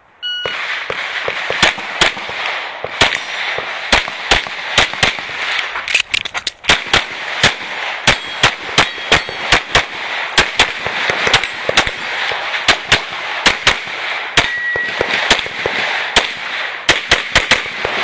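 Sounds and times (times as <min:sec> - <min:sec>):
electronic start beep: 0:00.2 - 0:00.6
pistol shots: 0:00.4 - 0:05.9, 0:06.6 - 0:18.0
metallic ring of steel targets: 0:08.1 - 0:13.5, 0:14.1 - 0:15.4.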